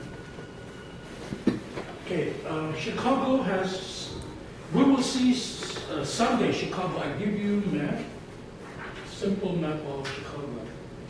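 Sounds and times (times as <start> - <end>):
lecture hall background hum: 0.0 - 11.0.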